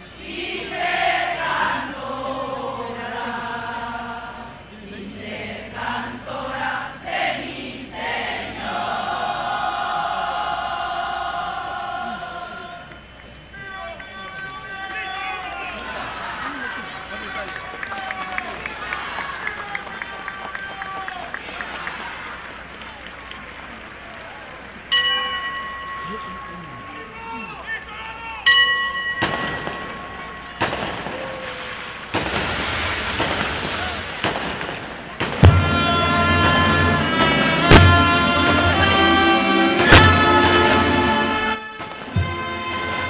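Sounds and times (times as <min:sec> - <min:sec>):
crowd singing a hymn: 0:00.0 - 0:13.2, 0:35.4 - 0:43.0
loud ringing strikes: 0:28.5 - 0:30.8, 0:35.4 - 0:43.0
fireworks bangs and crackling: 0:29.2 - 0:40.8, 0:41.8 - 0:42.4.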